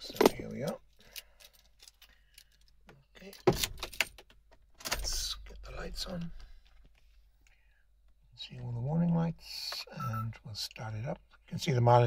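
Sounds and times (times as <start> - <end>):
car keys jangling: 0.0 - 5.1.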